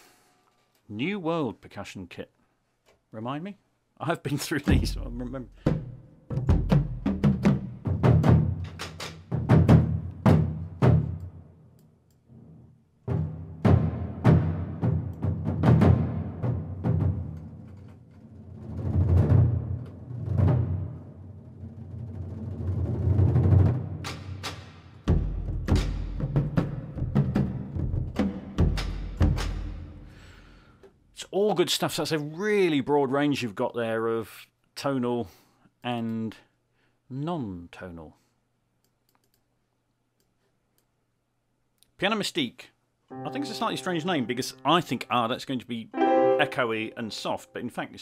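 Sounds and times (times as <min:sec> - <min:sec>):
deep pitched drum strikes: 0:04.7 - 0:08.6
orchestral percussion hits: 0:13.1 - 0:17.3, 0:43.1 - 0:45.1, 0:46.0 - 0:47.3.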